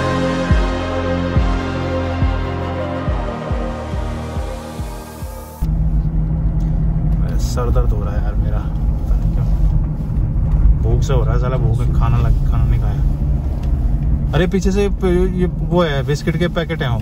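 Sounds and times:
music: 0:00.0 - 0:05.7
car engine and tyres rumbling: 0:00.0 - 0:17.0.

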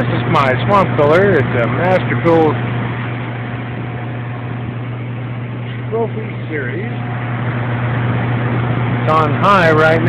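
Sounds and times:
cooler fan motor humming: 0:00.0 - 0:10.0.

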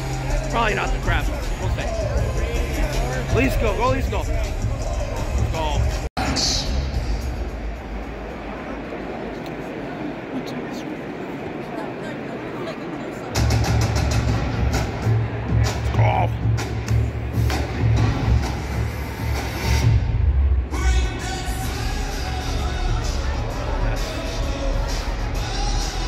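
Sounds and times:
bass-heavy music with pounding beat: 0:00.0 - 0:07.8, 0:13.4 - 0:26.0
crowd noise: 0:00.0 - 0:26.0.

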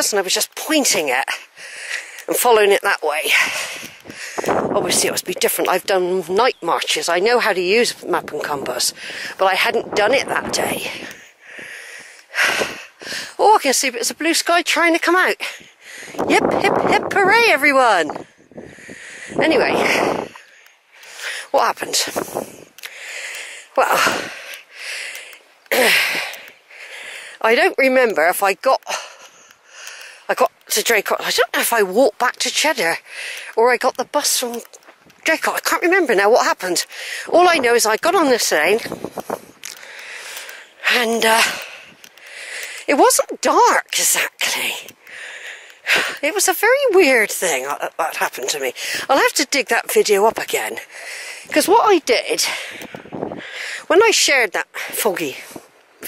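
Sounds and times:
person speaking: 0:00.0 - 0:11.4, 0:13.2 - 0:15.6, 0:16.2 - 0:18.1, 0:19.4 - 0:20.4, 0:21.1 - 0:29.2, 0:29.9 - 0:52.8, 0:53.8 - 0:55.5
person breathing close to microphone: 0:01.4 - 0:02.3, 0:03.3 - 0:04.8, 0:08.9 - 0:09.4, 0:10.8 - 0:13.4, 0:15.4 - 0:16.3, 0:18.1 - 0:27.4, 0:28.8 - 0:30.3, 0:33.0 - 0:33.6, 0:36.9 - 0:37.3, 0:38.8 - 0:42.9, 0:44.9 - 0:46.2, 0:48.7 - 0:49.1, 0:50.8 - 0:51.6, 0:52.4 - 0:53.9.

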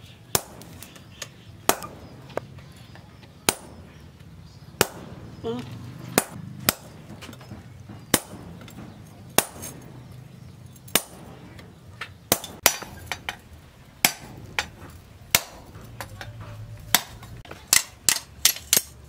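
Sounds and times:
hammer striking steel punch: 0:00.3 - 0:01.0, 0:01.7 - 0:02.5, 0:03.4 - 0:04.0, 0:04.8 - 0:05.4, 0:06.1 - 0:10.2, 0:10.9 - 0:11.6, 0:12.3 - 0:13.4, 0:14.0 - 0:16.3, 0:16.9 - 0:19.0.

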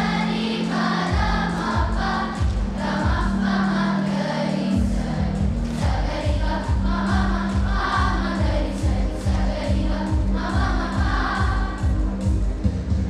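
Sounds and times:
children's choir singing: 0:00.0 - 0:12.7
backing music with low beat: 0:00.0 - 0:13.0.

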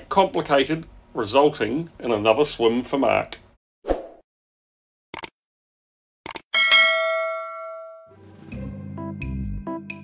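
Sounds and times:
bright bell ding: 0:06.6 - 0:08.2
soft music: 0:08.0 - 0:10.0.

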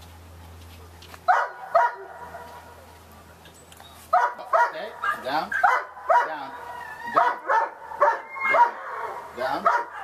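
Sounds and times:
dog barking: 0:01.3 - 0:02.7, 0:04.1 - 0:10.0.

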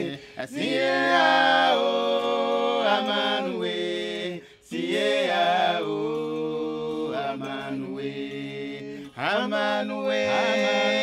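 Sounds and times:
voices singing slow chant: 0:00.0 - 0:11.0.

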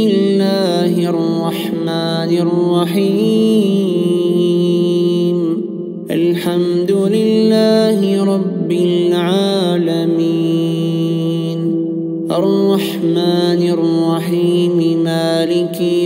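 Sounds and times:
man chanting melodically: 0:00.0 - 0:16.0.

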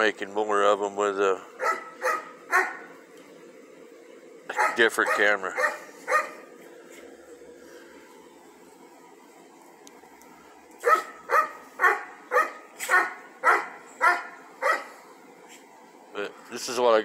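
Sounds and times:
dog barking: 0:01.6 - 0:02.9, 0:04.5 - 0:06.5, 0:10.8 - 0:15.0.

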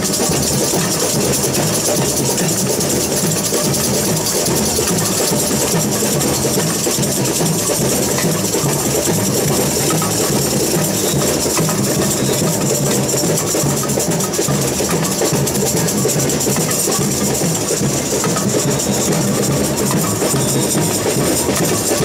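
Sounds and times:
low drum beat: 0:00.0 - 0:22.0
metal shakers hissing: 0:00.0 - 0:22.0.

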